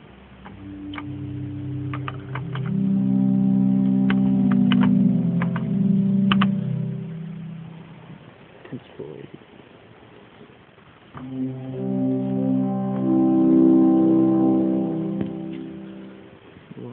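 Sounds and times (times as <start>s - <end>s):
pipe organ low chord: 0.0s - 8.4s, 11.2s - 16.5s.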